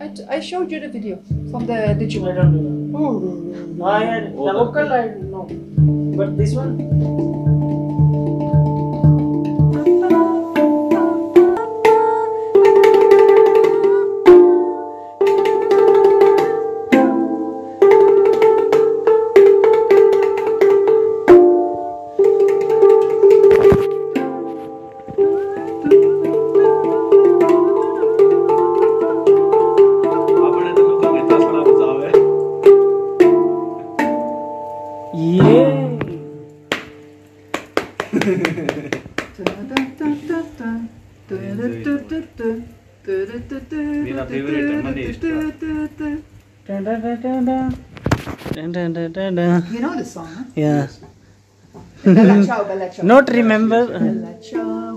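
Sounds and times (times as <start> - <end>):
handpan melody: 0.0 - 40.6, 53.3 - 54.9.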